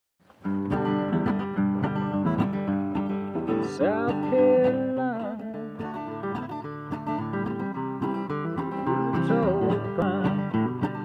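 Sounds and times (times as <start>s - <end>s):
acoustic guitar strumming: 0.4s - 11.0s
man singing: 3.5s - 6.2s, 8.8s - 11.0s.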